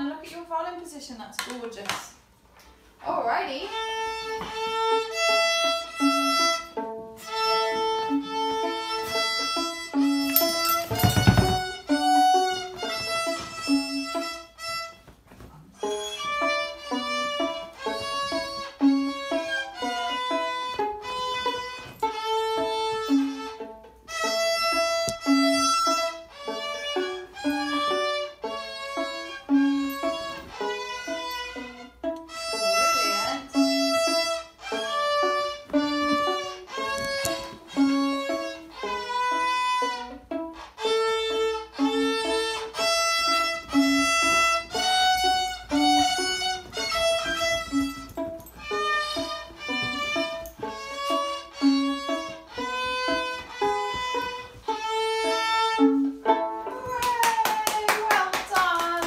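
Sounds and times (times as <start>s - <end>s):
violin bowed in short notes: 3.7s - 57.2s.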